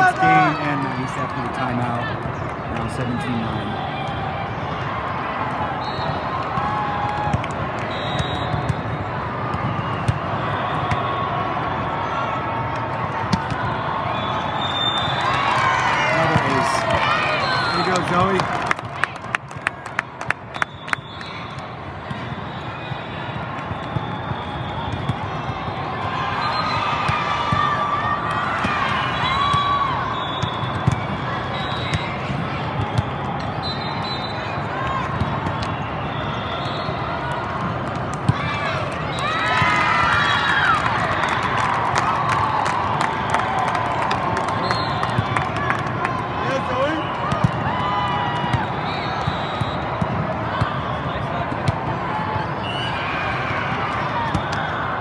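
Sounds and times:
many voices in a hall: 40.6s - 55.0s.

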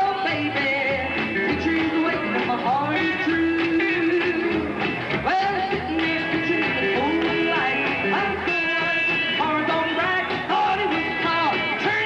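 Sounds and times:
electric guitar: 0.0s - 12.0s
rockabilly band playing: 0.0s - 12.0s
upright bass: 0.0s - 12.0s.

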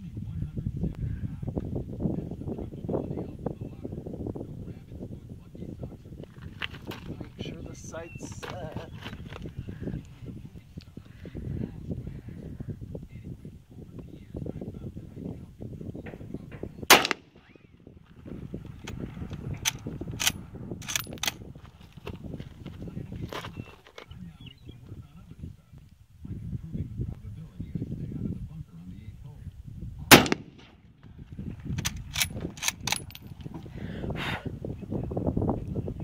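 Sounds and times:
wind rumble on microphone: 0.0s - 36.0s
loud rifle shot: 16.9s - 17.6s, 30.1s - 30.8s.

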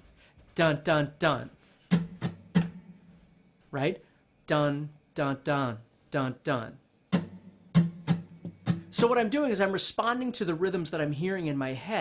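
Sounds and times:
acoustic guitar strumming: 1.9s - 3.3s, 7.1s - 9.6s.

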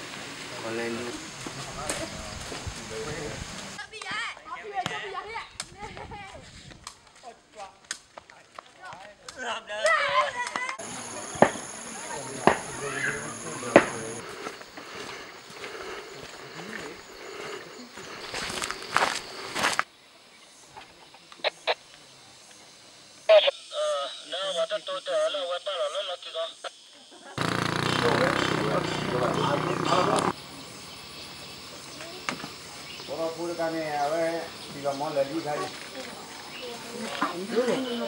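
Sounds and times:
footsteps crunching on dirt: 0.0s - 3.8s, 10.8s - 19.9s
players calling out: 10.8s - 18.2s, 27.4s - 30.8s.

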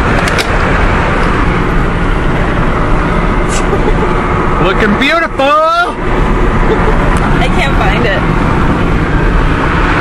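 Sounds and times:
road and wind noise in car: 0.0s - 10.0s.

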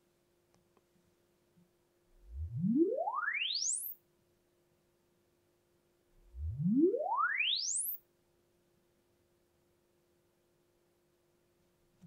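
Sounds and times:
sine sweep test tone: 2.2s - 4.0s, 6.2s - 8.0s.

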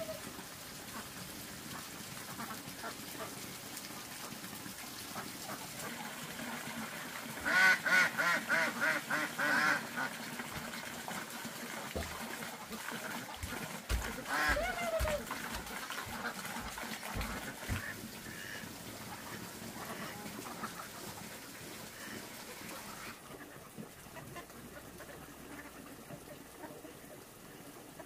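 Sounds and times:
ducks quacking: 7.4s - 10.2s, 12.6s - 21.4s, 22.8s - 28.0s.

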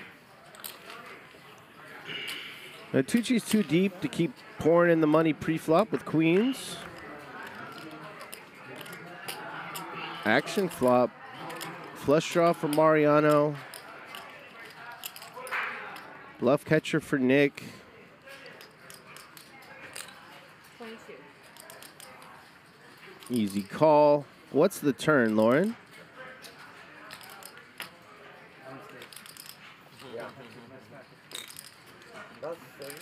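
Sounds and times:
faint background voices: 0.0s - 33.0s
poker chips clicking: 21.4s - 22.4s, 23.1s - 23.8s, 31.3s - 32.2s.

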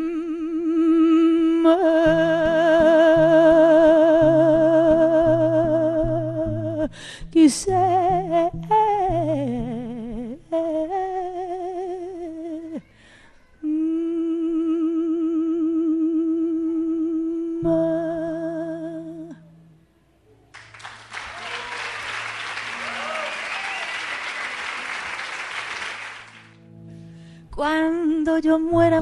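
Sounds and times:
woman singing with vibrato: 0.0s - 12.9s, 13.6s - 19.5s, 27.5s - 29.0s
classical guitar notes: 1.5s - 12.8s, 26.5s - 29.0s
audience applauding: 20.5s - 26.6s.

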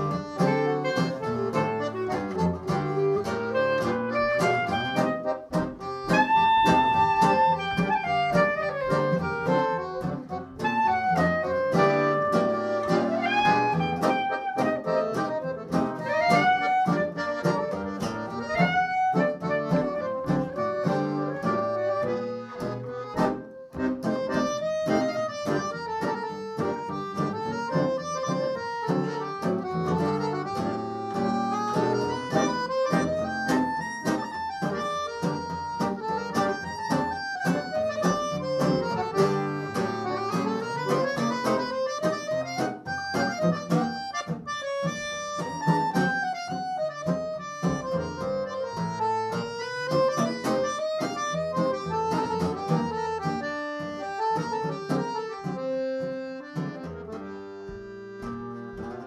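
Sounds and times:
accordion melody: 0.0s - 59.0s
acoustic guitar chords: 0.0s - 59.0s.

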